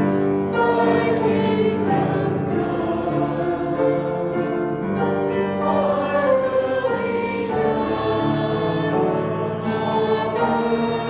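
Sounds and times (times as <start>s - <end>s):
group of voices singing a hymn: 0.0s - 11.0s
piano accompaniment: 0.0s - 11.0s.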